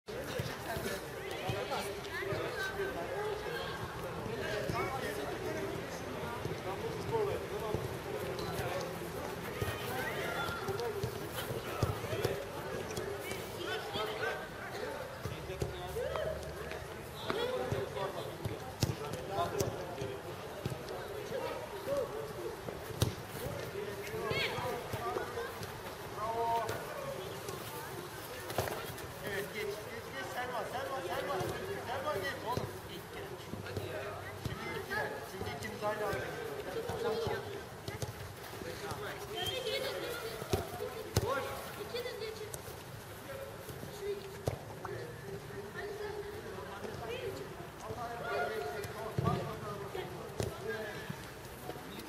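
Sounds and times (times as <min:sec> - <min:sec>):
footballs kicked thuds: 0:17.2 - 0:20.9, 0:22.8 - 0:23.7, 0:40.4 - 0:41.6.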